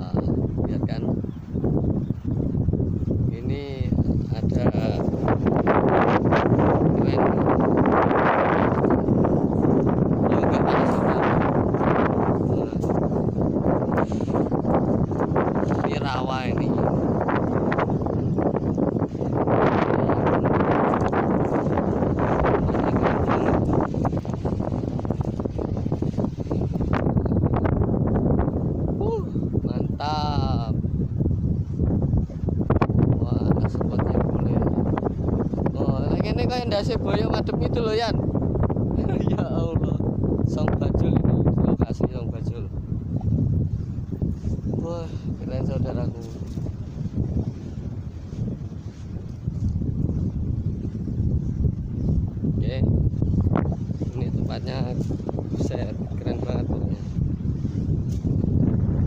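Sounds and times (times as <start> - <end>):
surf: 0.0 - 59.0
wind rushing: 0.0 - 59.0.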